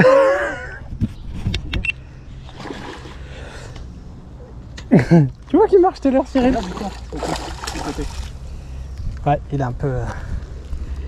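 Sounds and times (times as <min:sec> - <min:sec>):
fish splashing in water: 0:06.5 - 0:08.4.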